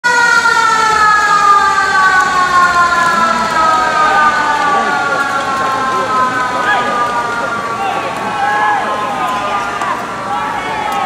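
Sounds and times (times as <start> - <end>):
motor-driven siren winding down: 0.1 - 8.8.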